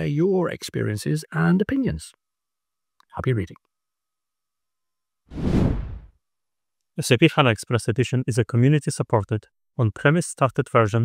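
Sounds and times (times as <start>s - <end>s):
whoosh transition effect: 5.3s - 6.1s.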